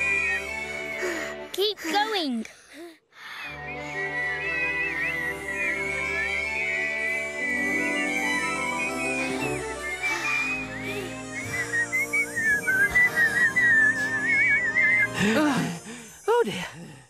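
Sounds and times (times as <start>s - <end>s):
high whistling: 0.0s - 1.0s, 3.4s - 16.3s.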